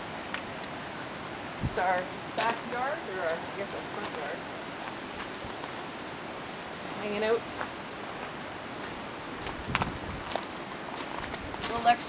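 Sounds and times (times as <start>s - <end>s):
wind on microphone: 1.4s - 5.8s, 8.7s - 12.0s.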